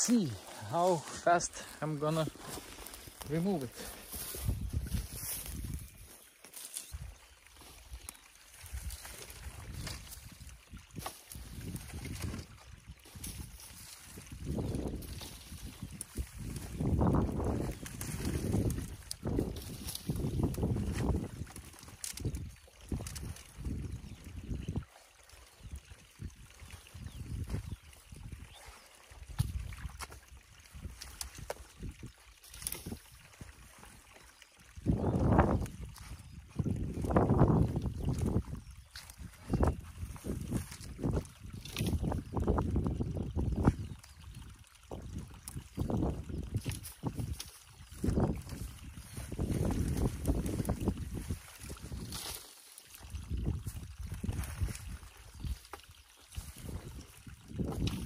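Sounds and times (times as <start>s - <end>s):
boots sloshing through mud: 0.0s - 23.9s, 26.5s - 44.2s, 44.9s - 58.0s
dry reeds rustling: 0.0s - 25.4s, 26.4s - 44.1s, 44.9s - 58.0s
wind gusting on microphone: 2.2s - 6.2s, 8.6s - 24.9s, 34.7s - 52.4s, 53.0s - 55.6s, 56.3s - 58.0s.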